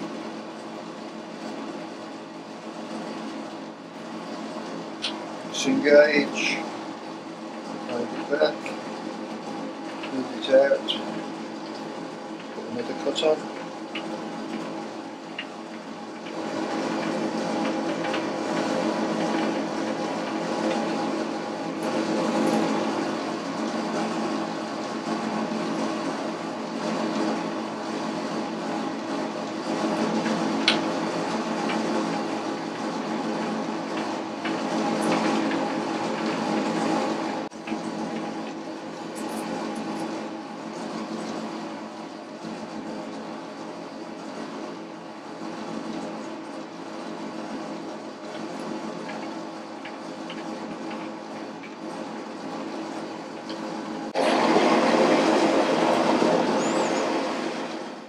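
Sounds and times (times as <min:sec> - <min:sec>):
metal lathe whine and rattle: 0:00.0 - 0:58.0.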